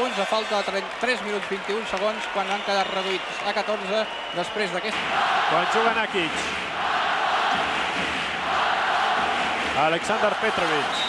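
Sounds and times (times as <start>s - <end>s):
crowd roaring: 4.4s - 11.0s.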